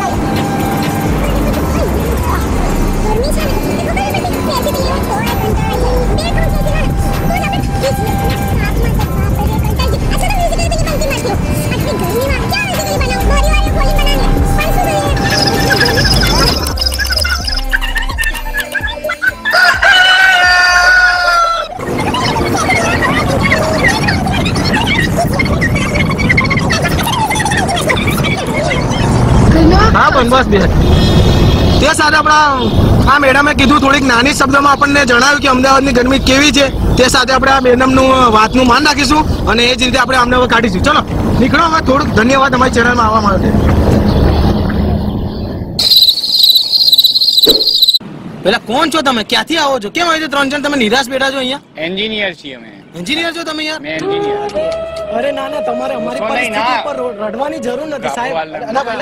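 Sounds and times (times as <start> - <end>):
cricket chirping trill: 13.8 - 18.6, 45.8 - 48.0
rooster crowing: 19.4 - 21.8.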